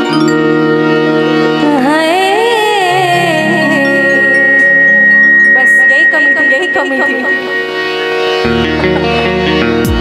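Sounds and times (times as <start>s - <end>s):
harmonium notes: 0.0s - 10.0s
woman singing: 1.5s - 4.9s, 5.5s - 7.6s.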